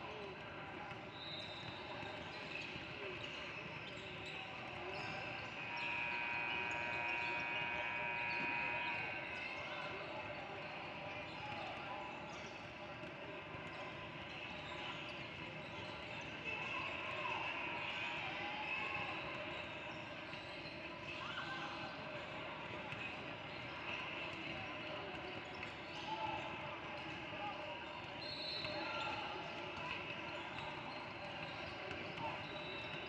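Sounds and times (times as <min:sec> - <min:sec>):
voices in gym hall: 0:00.0 - 0:33.0.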